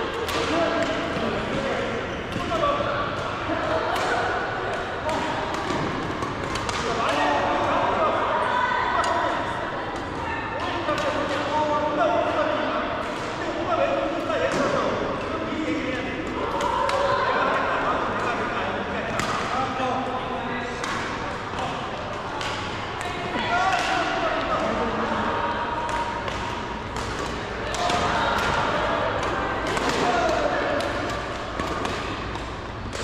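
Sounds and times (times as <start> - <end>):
indistinct chatter echoing: 0.0 - 33.0
rackets hitting shuttlecocks: 3.9 - 7.6, 20.8 - 24.8, 25.8 - 33.0.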